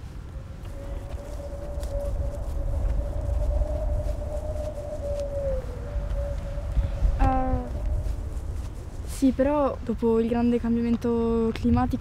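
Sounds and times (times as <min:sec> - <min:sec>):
wind rumbling on microphone: 0:00.0 - 0:12.0
thin wavering tone: 0:00.6 - 0:09.3.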